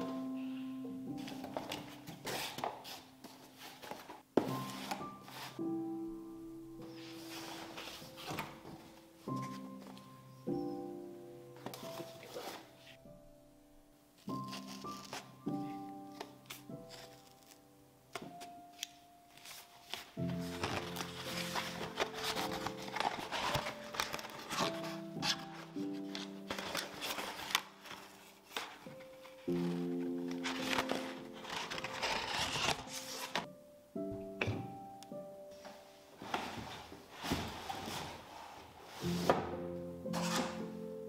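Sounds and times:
cardboard rustling and tearing: 0:01.3 - 0:05.6, 0:14.3 - 0:15.4, 0:19.3 - 0:33.5, 0:36.3 - 0:39.4, 0:40.1 - 0:40.6.

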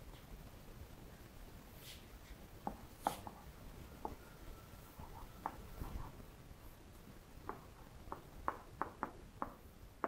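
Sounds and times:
chalk tapping and scratching: 0:02.6 - 0:03.5, 0:05.0 - 0:06.2.

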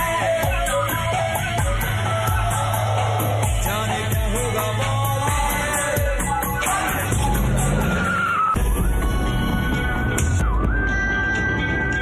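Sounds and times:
song music: 0:00.0 - 0:12.0.

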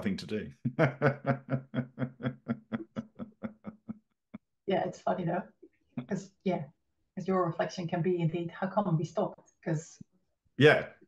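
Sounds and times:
person laughing: 0:00.6 - 0:03.9.

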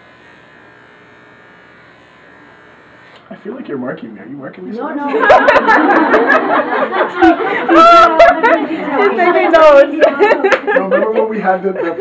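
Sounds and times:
electric hair clippers buzzing: 0:00.0 - 0:04.4.

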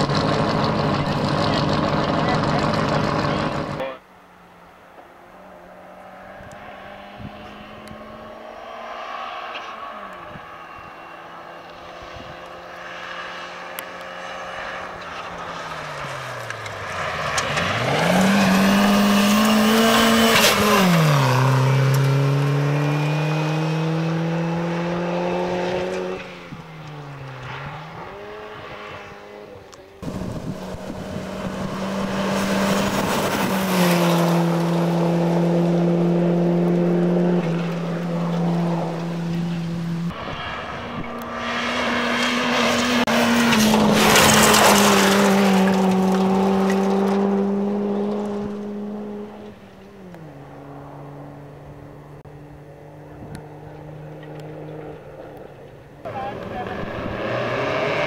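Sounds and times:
rally car engine at full throttle: 0:00.0 - 0:04.0, 0:05.0 - 0:58.0
car engine holding high note: 0:27.9 - 0:44.0.

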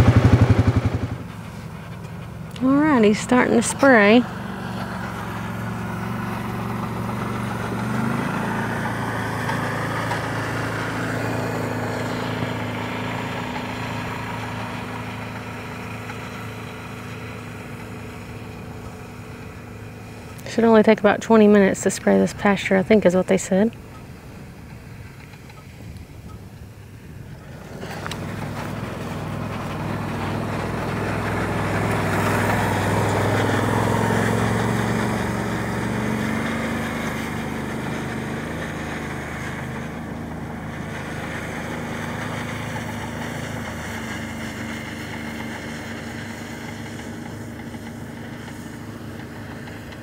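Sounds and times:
utility vehicle engine running: 0:00.0 - 0:50.0.

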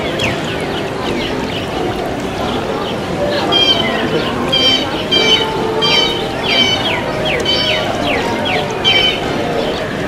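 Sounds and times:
crowd chatter: 0:00.0 - 0:10.0
short falling high-pitched calls: 0:03.5 - 0:09.2
metal wind chimes ringing: 0:03.6 - 0:10.0.

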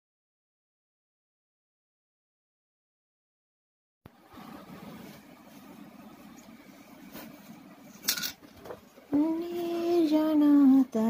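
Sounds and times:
faint low hum: 0:04.1 - 0:11.0.

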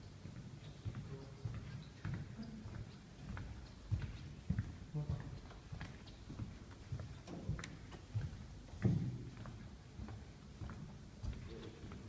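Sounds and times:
footsteps with dull thuds: 0:00.0 - 0:12.0.

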